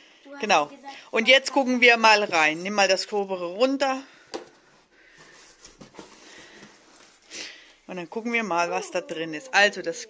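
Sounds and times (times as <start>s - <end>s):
cardboard flaps rustling: 5.1s - 7.3s.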